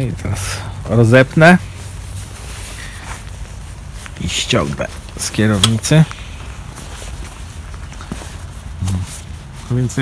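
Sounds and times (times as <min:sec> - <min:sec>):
outdoor background noise: 0:00.0 - 0:10.0
fabric rustling: 0:01.7 - 0:10.0.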